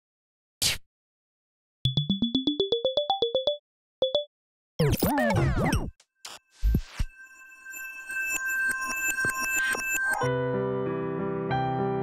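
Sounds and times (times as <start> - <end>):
held high electronic tones: 6.3 - 10.3.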